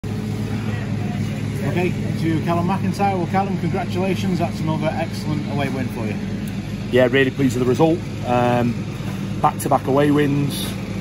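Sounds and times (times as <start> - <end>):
steady low hum: 0.0 - 11.0
man speaking: 1.5 - 8.8, 9.4 - 10.8.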